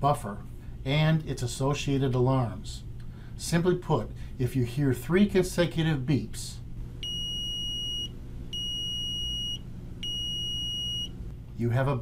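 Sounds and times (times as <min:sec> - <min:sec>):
high-pitched meter beeps: 0:07.0 - 0:11.2.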